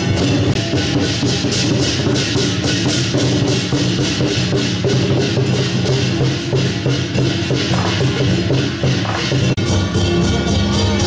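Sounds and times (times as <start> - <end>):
fast percussion beat: 0.0 - 11.0.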